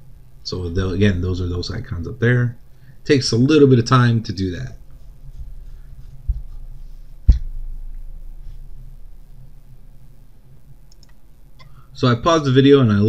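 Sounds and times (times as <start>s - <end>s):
quiet room hum: 0.0s - 13.0s
sharp knock: 7.2s - 8.2s
faint clicks: 10.9s - 11.8s.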